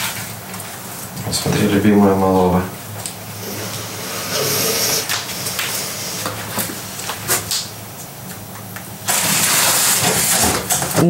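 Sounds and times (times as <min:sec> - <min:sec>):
loud rushing hiss: 0:03.2 - 0:07.4.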